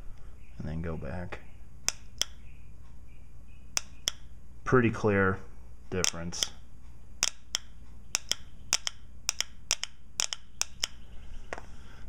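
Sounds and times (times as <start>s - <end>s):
solenoid clicking: 1.9s - 2.4s, 3.8s - 4.3s, 7.2s - 11.0s.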